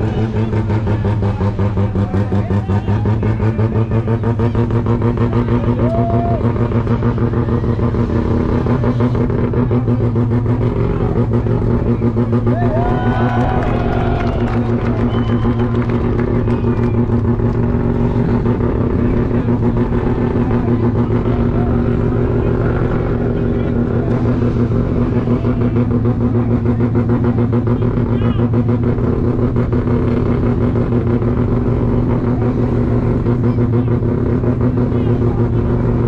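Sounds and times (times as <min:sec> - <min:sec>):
rotary engine at high revs: 0:00.0 - 0:36.0.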